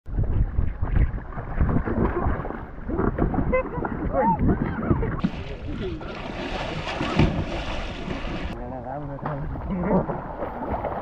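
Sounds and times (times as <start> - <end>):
wind buffeting microphone: 0.1 - 6.0
water splashing: 0.1 - 11.0.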